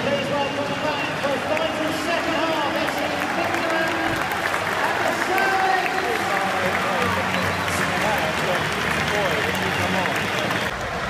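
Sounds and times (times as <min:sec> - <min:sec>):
crowd talking and calling: 0:00.0 - 0:11.0
people clapping: 0:00.0 - 0:11.0.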